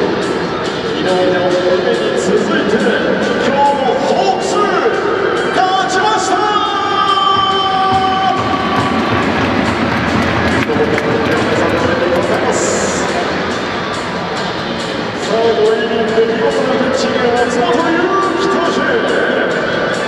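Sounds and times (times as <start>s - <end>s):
crowd noise and voices: 0.0s - 20.0s
music over public address: 0.0s - 20.0s.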